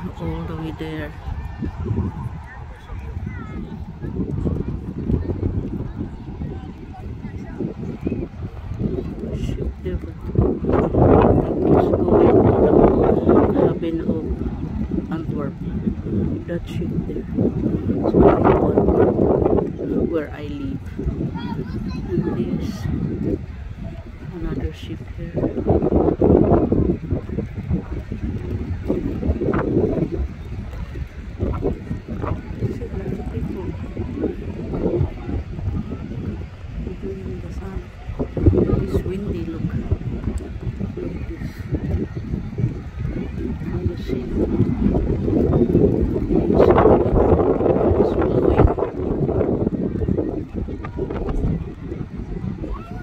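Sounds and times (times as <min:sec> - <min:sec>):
wind buffeting microphone: 0:00.0 - 0:53.0.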